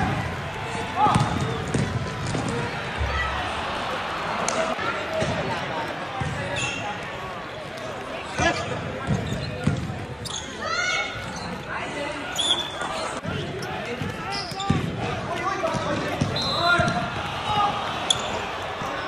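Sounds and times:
players' voices echoing: 0.0 - 19.0
basketball bouncing on court floor: 1.0 - 2.6, 6.2 - 6.4, 8.4 - 10.0
sneaker squeaks: 6.2 - 7.0, 8.4 - 14.9, 16.1 - 17.0, 18.1 - 18.4.

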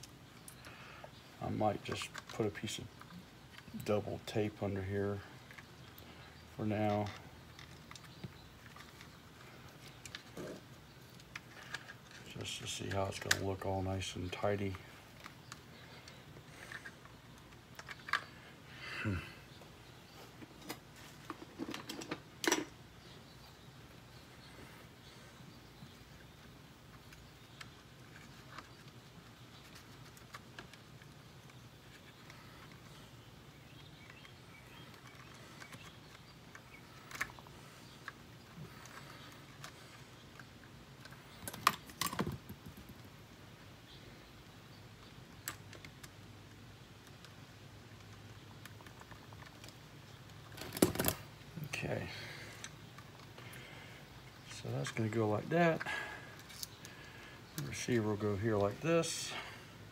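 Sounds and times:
clicks of handling plastic parts: 1.8 - 4.4, 5.4 - 13.6, 47.0 - 51.3, 55.8 - 57.9.

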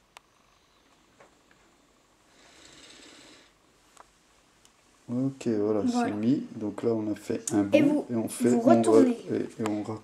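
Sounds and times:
soft rustling hiss: 0.0 - 10.0.

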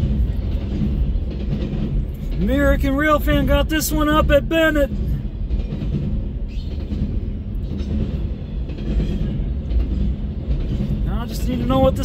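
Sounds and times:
train wheels rumbling on rail: 0.0 - 12.0.

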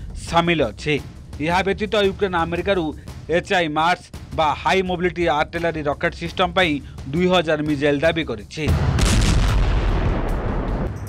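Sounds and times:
heavy weapon blast: 8.7 - 10.9.

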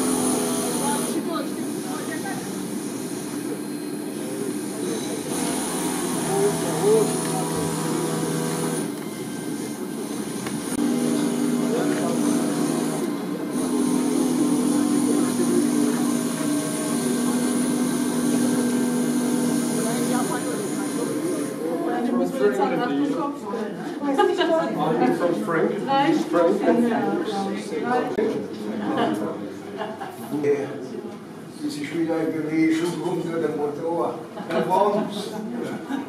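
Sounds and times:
indistinct group chatter: 0.0 - 36.0.

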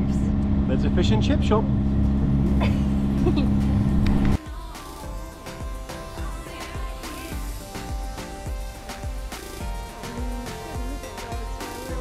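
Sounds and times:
boat engine droning: 0.0 - 4.4
person laughing: 2.4 - 3.8
background music with steady beat: 4.4 - 12.0.

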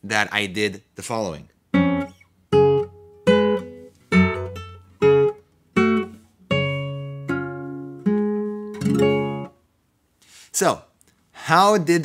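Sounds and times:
classical guitar plucked slowly: 1.7 - 9.6.

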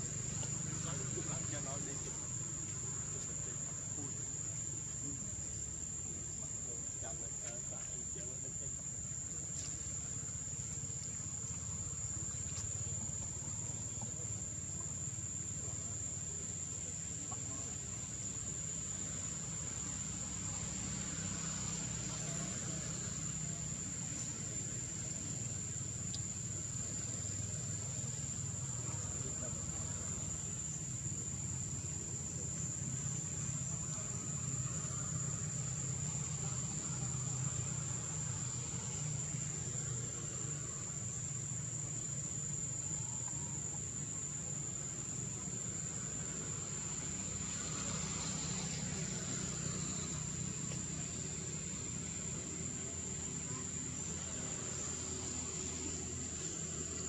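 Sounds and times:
continuous low rumble: 0.0 - 57.0.

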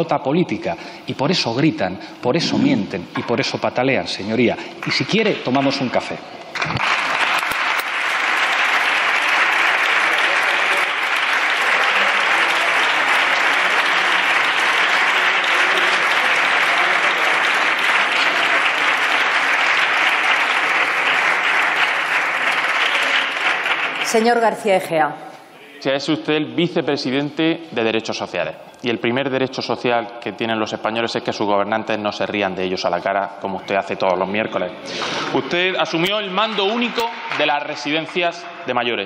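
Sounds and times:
group applause: 4.8 - 24.7, 34.9 - 39.0.

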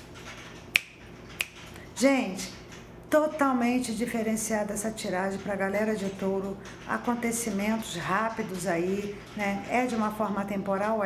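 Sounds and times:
fingers snapping: 0.7 - 1.6.

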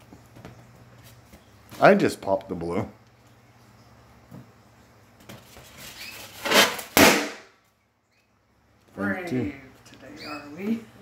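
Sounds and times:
balloon bursting: 6.4 - 7.5.

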